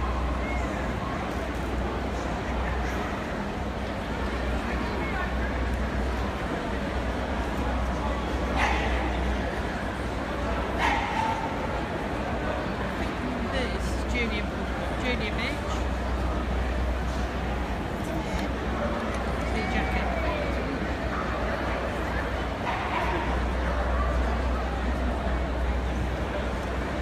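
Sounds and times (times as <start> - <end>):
people's voices: 0.0 - 27.0
dog barking: 8.6 - 9.1, 10.8 - 11.5.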